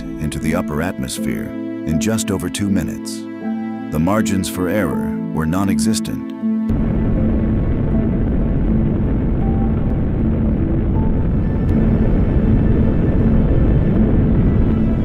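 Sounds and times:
faint music: 0:00.0 - 0:15.0
rocket engines rumbling: 0:06.7 - 0:15.0.

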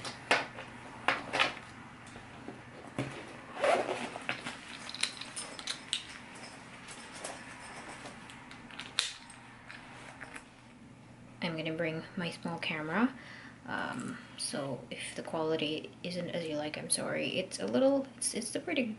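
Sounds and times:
fabric and strap rustling: 0:02.1 - 0:10.5
buckle clicks and clinks: 0:04.3 - 0:10.4.

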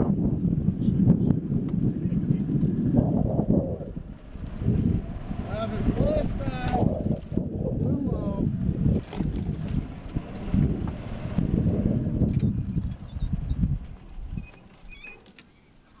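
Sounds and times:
golf cart engine rumbling: 0:00.0 - 0:16.0.

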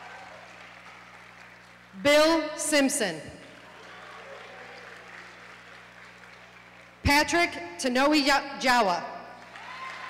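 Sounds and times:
faint audience applause: 0:00.0 - 0:02.0, 0:03.4 - 0:07.0, 0:09.4 - 0:10.0
low steady hum: 0:00.0 - 0:10.0.

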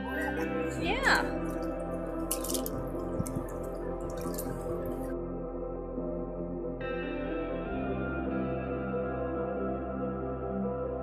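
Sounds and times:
ambient background music: 0:00.0 - 0:11.0
water splashing in paddling pool: 0:00.4 - 0:05.1.

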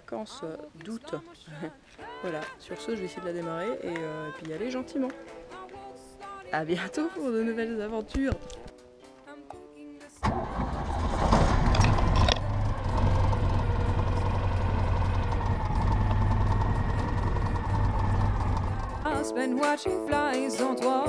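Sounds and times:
car engine starting and running: 0:10.2 - 0:19.1.

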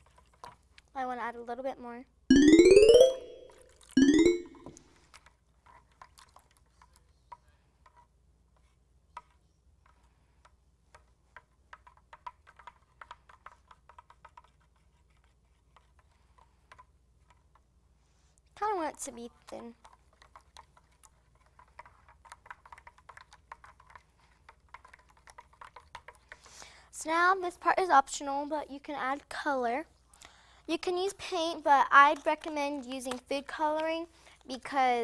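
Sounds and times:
stick stirring in glass bowl: 0:19.8 - 0:26.4.

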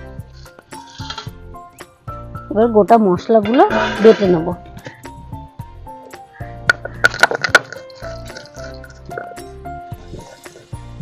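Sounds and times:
background music: 0:00.0 - 0:11.0
stone roller crushing spices: 0:00.4 - 0:01.4, 0:03.4 - 0:05.1, 0:06.6 - 0:10.8
stone grinding: 0:03.5 - 0:04.6.

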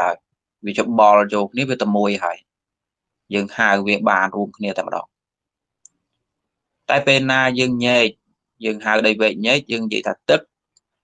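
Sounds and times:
man speaking: 0:00.0 - 0:02.5, 0:03.2 - 0:05.2, 0:06.8 - 0:10.6.

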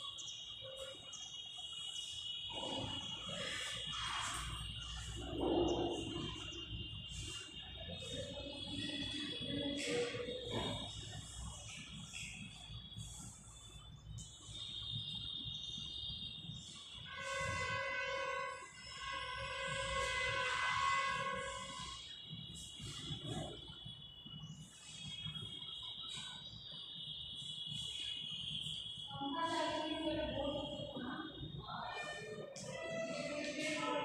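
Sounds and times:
steady high-pitched tone: 0:00.0 - 0:34.0
horn-like tone blasts: 0:02.4 - 0:07.4, 0:17.1 - 0:22.2.

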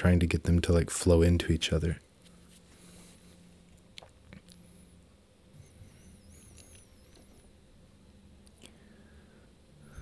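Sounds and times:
steady low hum: 0:00.0 - 0:10.0
faint wavering high squeak: 0:05.5 - 0:07.7.

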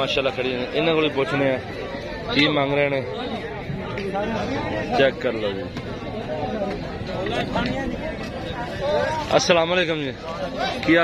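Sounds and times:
men talking over one another: 0:00.0 - 0:11.0.

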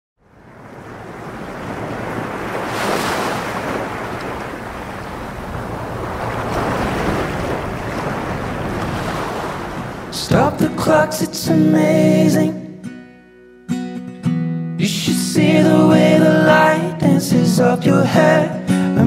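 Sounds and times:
ocean waves breaking: 0:00.2 - 0:11.2.

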